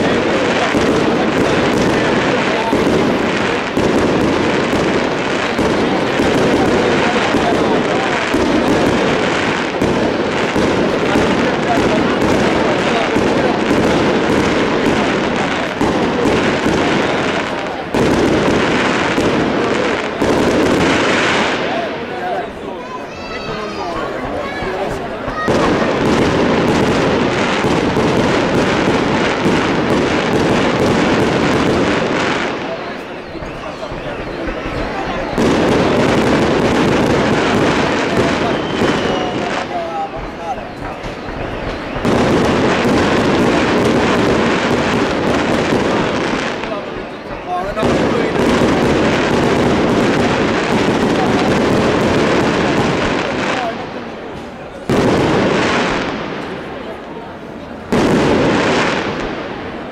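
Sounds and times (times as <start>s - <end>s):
fireworks bangs and crackles: 0.0s - 59.9s.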